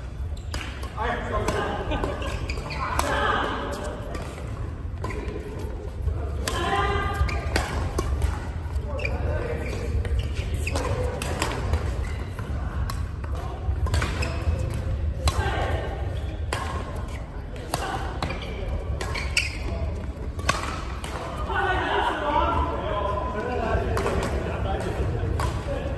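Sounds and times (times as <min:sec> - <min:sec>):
voices in a hall: 0:00.0 - 0:25.9
rackets hitting shuttlecock: 0:00.4 - 0:05.6, 0:06.3 - 0:08.7, 0:09.7 - 0:21.4, 0:23.8 - 0:25.8.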